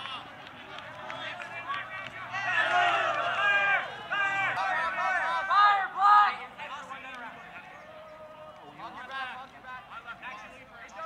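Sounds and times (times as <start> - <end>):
players and spectators shouting: 0.0 - 10.2.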